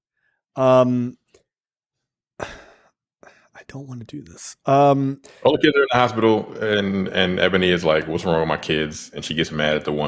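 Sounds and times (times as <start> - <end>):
person sighing: 2.4 - 2.8.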